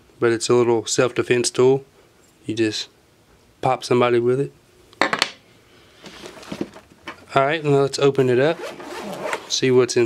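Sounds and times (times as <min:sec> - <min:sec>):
fabric pouch rustling: 0:06.0 - 0:06.9, 0:08.4 - 0:09.6.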